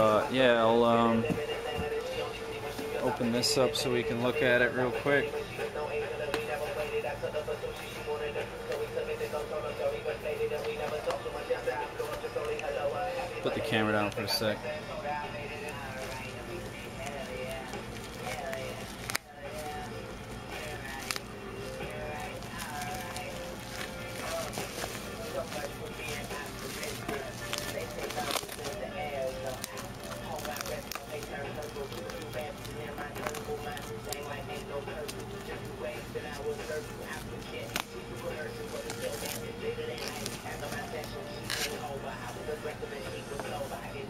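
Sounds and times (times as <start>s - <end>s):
background music: 0.0s - 44.0s
bubble wrap crinkling: 15.4s - 44.0s.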